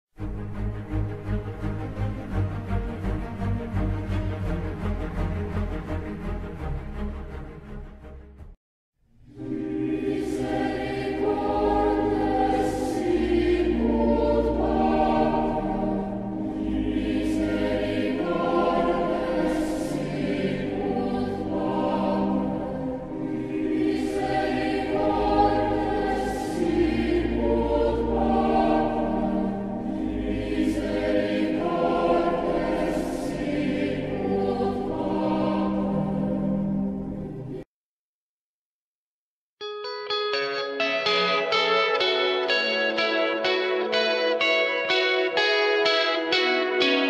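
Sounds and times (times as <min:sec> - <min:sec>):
choir singing sacred music: 0:00.3 - 0:07.3, 0:09.3 - 0:37.7, 0:41.0 - 0:47.0
low sustained accompaniment: 0:09.2 - 0:37.6.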